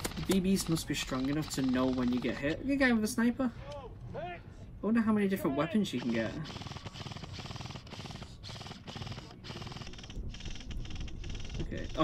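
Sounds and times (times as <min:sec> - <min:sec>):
airsoft rifles firing full auto: 0:00.0 - 0:02.6, 0:05.9 - 0:12.0.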